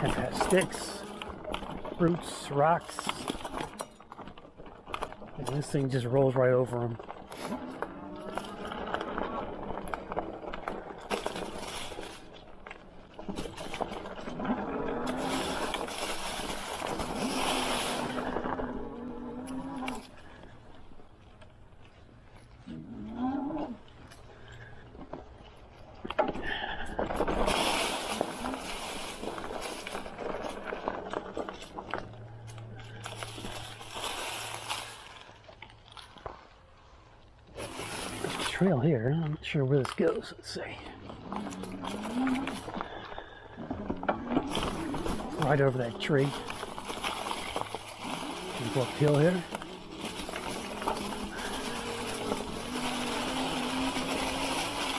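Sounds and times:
bike tyres crunching through leaves: 0:00.0 - 0:54.9.

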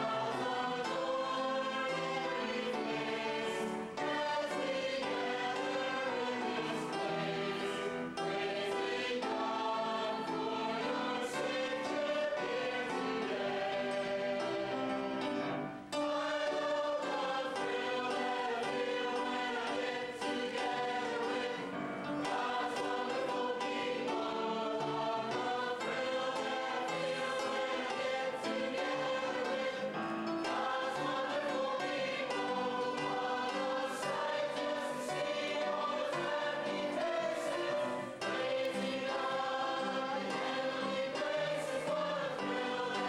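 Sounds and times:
mixed choir singing: 0:00.0 - 0:43.0.

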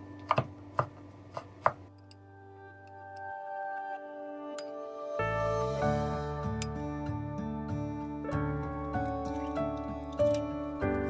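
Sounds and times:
soft background music: 0:00.0 - 0:11.0
knife chopping on wooden board: 0:00.2 - 0:01.8.

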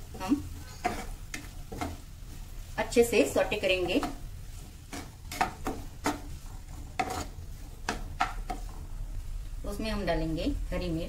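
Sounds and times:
spatula scraping a pan: 0:00.0 - 0:08.8
vegetables sizzling in oil: 0:00.0 - 0:11.0.

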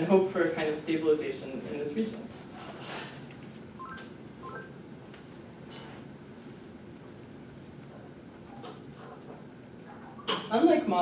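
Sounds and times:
rising electronic beeps: 0:03.8 - 0:04.8.

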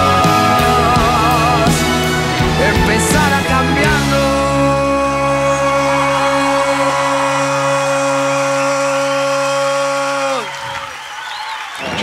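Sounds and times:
rock band chord bending down: 0:00.0 - 0:10.1
crowd cheering: 0:00.0 - 0:12.0.

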